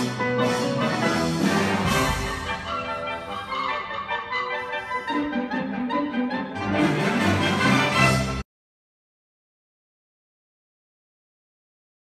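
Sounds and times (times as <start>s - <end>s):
orchestral strings music: 0.0s - 8.4s.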